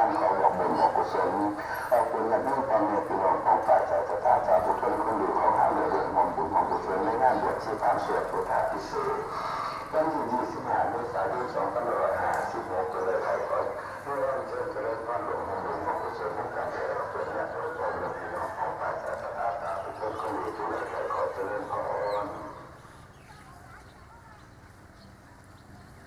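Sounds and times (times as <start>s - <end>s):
stream of human voices: 0.0s - 26.0s.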